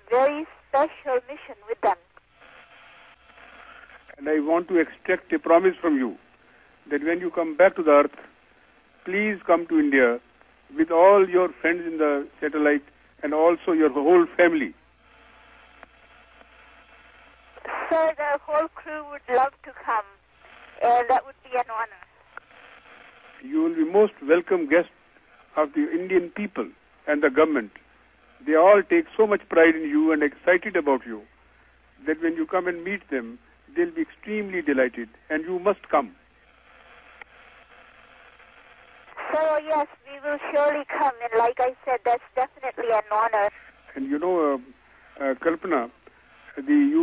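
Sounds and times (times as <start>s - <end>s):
radio static and hiss: 0.0s - 47.0s.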